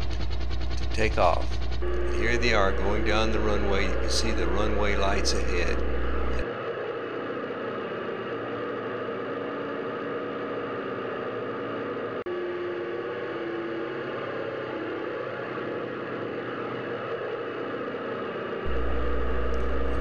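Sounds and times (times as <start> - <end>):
piston engines droning: 0.0 - 6.5, 18.7 - 20.0.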